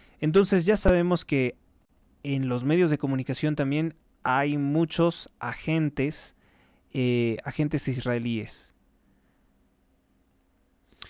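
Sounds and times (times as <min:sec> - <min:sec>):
faint clicks: 0:10.3 - 0:11.0.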